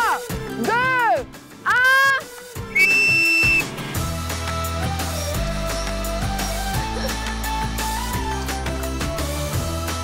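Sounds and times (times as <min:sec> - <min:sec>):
music: 0:00.0 - 0:10.0
steady high whistle note: 0:02.7 - 0:03.7
whistle swoops: 0:02.7 - 0:03.7.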